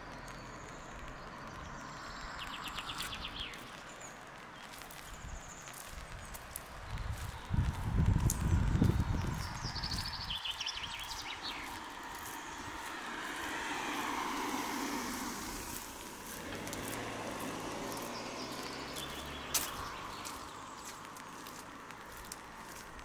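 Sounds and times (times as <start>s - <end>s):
bird chirps: 0.0s - 6.4s, 8.8s - 12.9s, 17.8s - 21.6s
vehicle passing: 7.6s - 23.0s.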